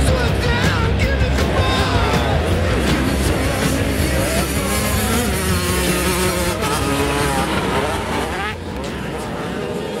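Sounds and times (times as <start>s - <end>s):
dirt bike engine revving: 0.0s - 10.0s.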